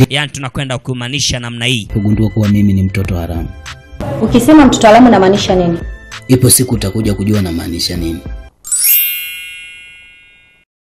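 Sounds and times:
bright bell-like chime: 8.6 - 10.7.

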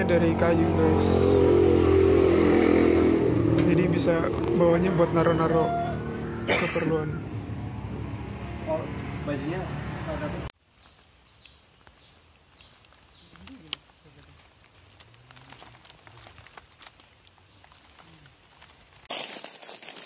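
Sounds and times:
small bird chirping: 10.7 - 14.4.

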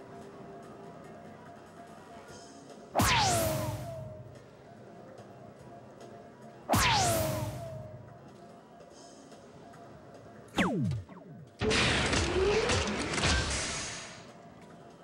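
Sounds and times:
electronic falling sweep: 3.0 - 4.4, 6.7 - 8.1, 10.6 - 11.6
electronic hit effect falling tones: 3.0 - 4.4, 6.7 - 8.1, 10.6 - 11.8.

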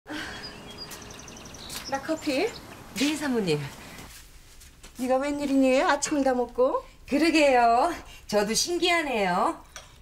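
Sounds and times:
faint bird chirps: 0.1 - 3.3
low background hiss: 0.2 - 10.0
woman's voice: 1.9 - 3.8, 5.0 - 9.6.

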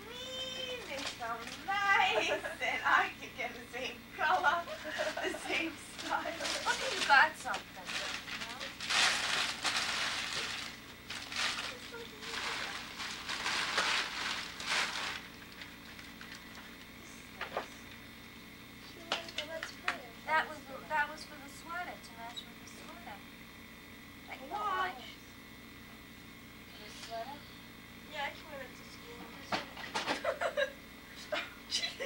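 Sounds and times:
paper crinkling and rustling: 0.6 - 1.7, 4.9 - 16.9.

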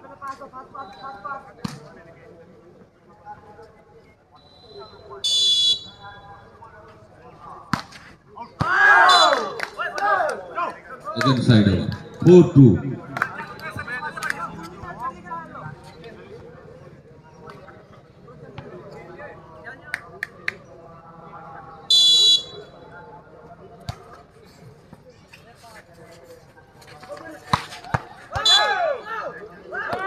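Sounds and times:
murmur of crowd and voices: 0.0 - 30.0
referee's whistle blast: 4.4 - 6.1, 21.9 - 22.7, 28.4 - 28.8
people shouting: 8.6 - 10.4, 28.3 - 30.0.

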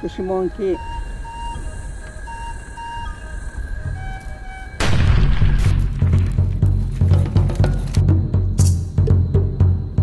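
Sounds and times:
soft music of held notes: 0.0 - 5.0.

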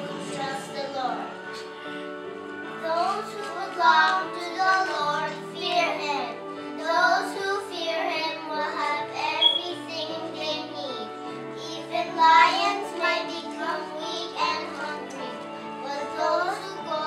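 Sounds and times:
children singing: 0.0 - 1.6, 2.6 - 10.8, 11.6 - 17.0.

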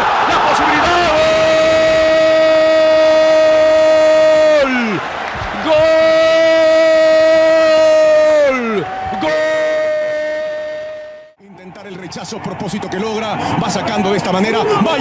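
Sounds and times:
commentator shouting goal cry: 0.0 - 11.2.

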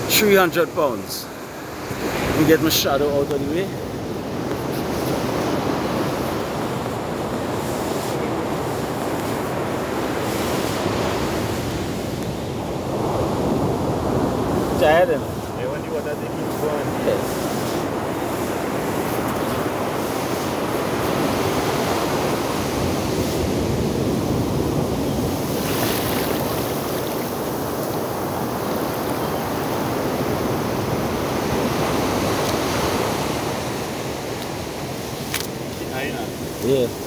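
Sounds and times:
waves breaking on beach: 0.0 - 37.0.

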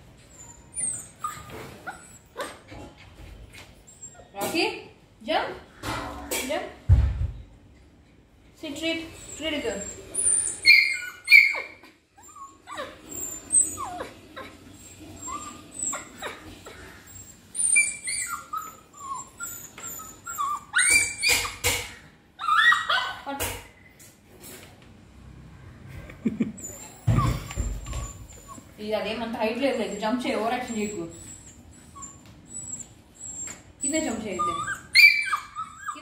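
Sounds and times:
puppy whining and whimpering: 0.0 - 4.4, 9.1 - 23.3, 26.4 - 36.0.

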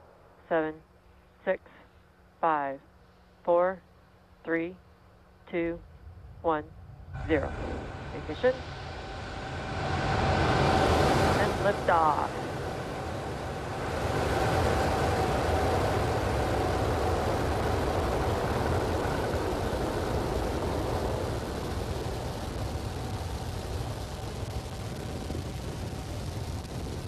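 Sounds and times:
rocket engines roaring: 5.5 - 27.0.

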